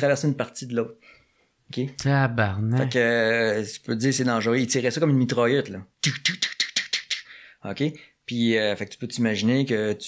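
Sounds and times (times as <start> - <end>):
man speaking: 0.0 - 1.0, 1.7 - 10.0.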